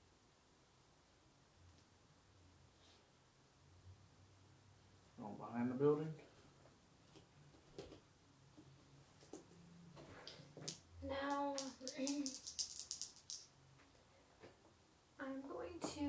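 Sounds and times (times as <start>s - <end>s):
clicks and taps of game pieces: 10.2s - 13.5s.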